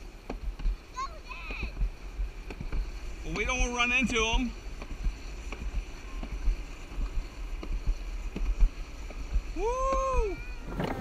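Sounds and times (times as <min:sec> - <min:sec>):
sled rumbling down track: 0:00.0 - 0:11.0
sled knocks and bumps: 0:00.2 - 0:11.0.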